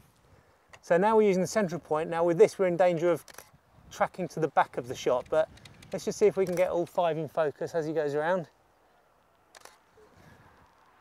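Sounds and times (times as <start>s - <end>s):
camera shutter click: 3.2s - 3.6s, 6.4s - 6.7s, 9.5s - 9.8s.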